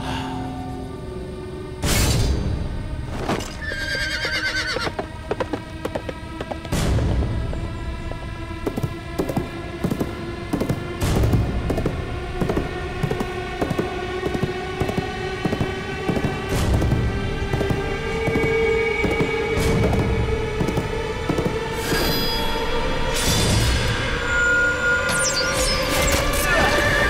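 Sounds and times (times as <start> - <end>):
dramatic orchestral music: 0.0 - 27.0
horse whinny: 3.5 - 5.0
galloping hoofbeats: 3.6 - 7.7, 8.6 - 22.0.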